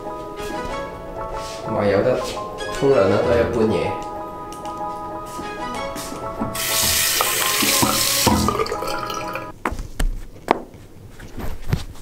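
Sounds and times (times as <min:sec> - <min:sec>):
water running from sink tap: 0:06.5 - 0:09.5.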